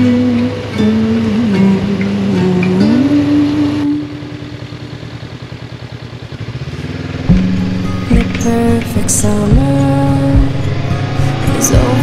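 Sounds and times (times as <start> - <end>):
motorcycle engine at low revs: 0.0 - 12.0
background music: 7.3 - 12.0.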